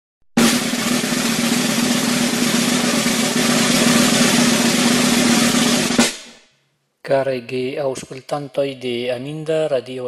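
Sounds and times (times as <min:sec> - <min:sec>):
snare drum roll: 0:00.4 - 0:06.4.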